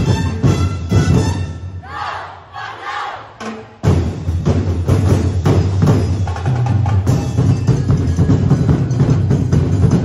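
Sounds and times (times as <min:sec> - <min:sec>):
parade drumming: 0:00.0 - 0:01.6, 0:03.2 - 0:10.0
group shouting in unison: 0:01.8 - 0:03.4.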